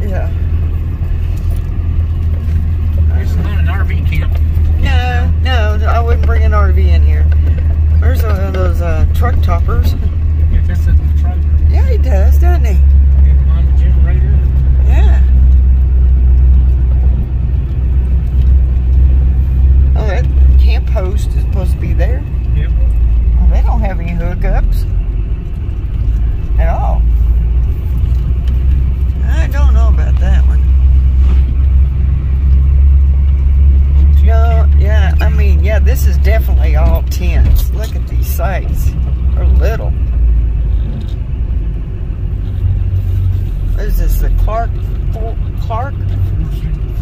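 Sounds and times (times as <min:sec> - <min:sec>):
car engine and tyres rumbling: 0:00.0 - 0:47.0.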